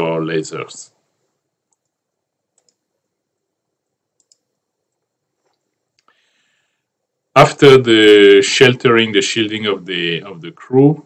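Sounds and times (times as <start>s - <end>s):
faint computer clicks: 1.7s - 2.9s, 4.2s - 6.2s.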